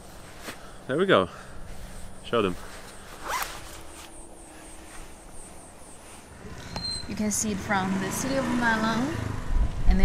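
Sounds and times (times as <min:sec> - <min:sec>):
jacket zipper zipping: 0:03.0 - 0:04.2.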